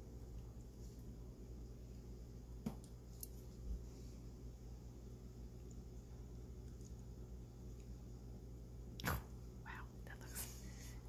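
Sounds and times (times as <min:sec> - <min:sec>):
soft whispering: 0:09.0 - 0:11.0.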